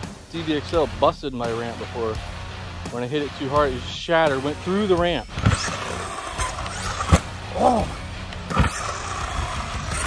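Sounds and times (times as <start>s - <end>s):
electric motor whining: 5.3s - 10.0s.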